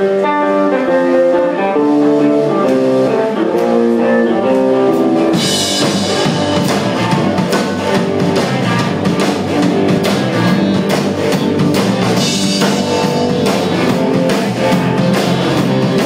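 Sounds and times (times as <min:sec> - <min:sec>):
drum kit with cymbals: 0:00.0 - 0:16.0
electric guitar riff: 0:00.0 - 0:16.0
rock band playing: 0:00.0 - 0:16.0.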